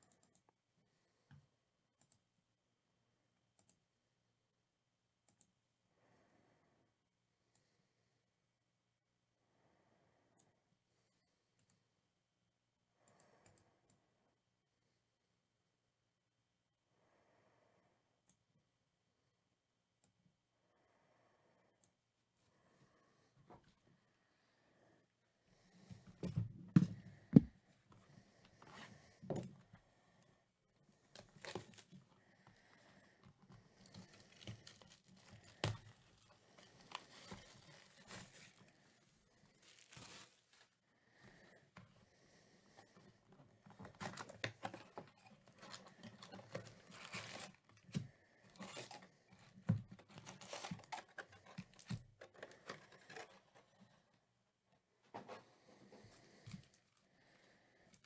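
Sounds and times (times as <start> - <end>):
cardboard tearing and crinkling: 44.0 - 47.6, 50.0 - 53.3.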